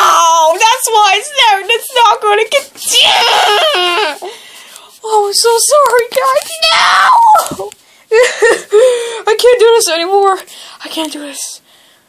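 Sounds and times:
child screaming and wailing: 2.8 - 4.3, 6.5 - 7.7.

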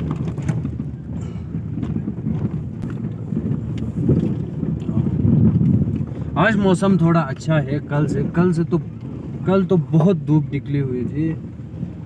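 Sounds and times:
low rumble of engine and tyres: 0.0 - 12.0.

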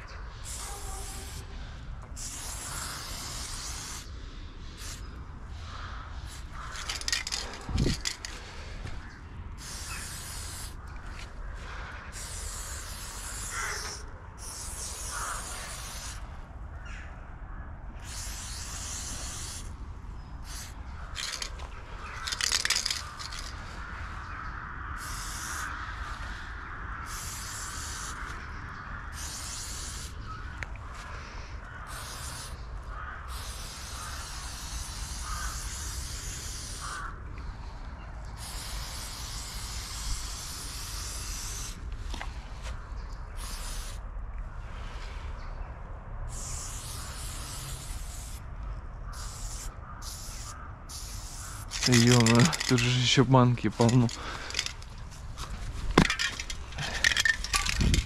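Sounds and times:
spray paint can hissing: 0.4 - 1.5, 2.2 - 4.1, 4.7 - 5.1, 5.8 - 8.4, 9.6 - 10.8, 11.7 - 16.3, 18.0 - 19.8, 20.4 - 23.8, 25.0 - 26.5, 27.1 - 28.4, 29.1 - 30.2, 31.9 - 37.1, 38.4 - 42.2, 43.4 - 44.0, 46.3 - 48.4, 49.1 - 53.0, 53.7 - 58.0.

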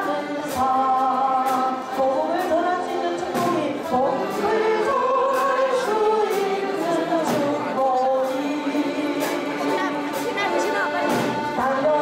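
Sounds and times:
accordion ensemble playing: 0.0 - 12.0
group of voices singing: 0.0 - 12.0.

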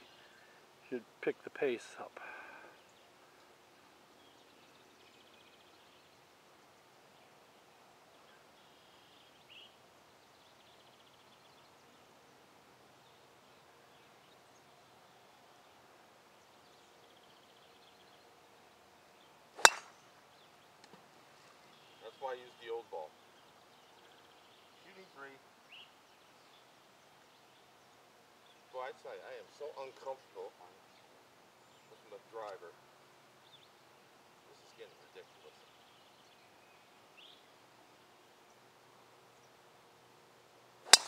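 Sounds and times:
golf club striking ball: 19.6 - 20.0.

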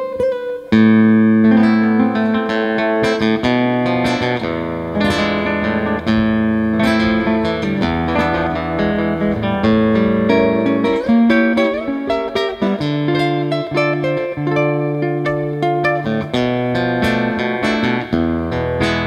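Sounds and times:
nylon-string guitar fingerstyle: 0.0 - 19.0.

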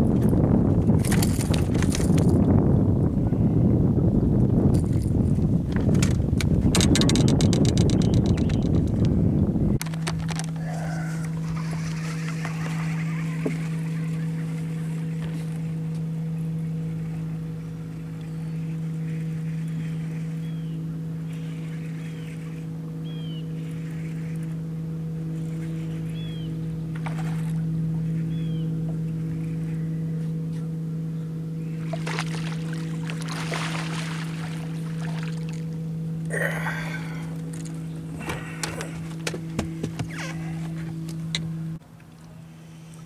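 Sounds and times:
electric trolling motor humming: 0.0 - 43.0
faint bird chirps: 17.6 - 24.5, 25.4 - 26.6, 28.0 - 31.9.

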